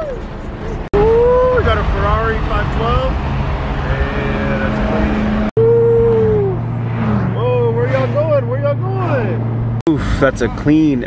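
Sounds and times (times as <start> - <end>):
car engine drone: 0.0 - 11.0
road rumble: 0.0 - 11.0.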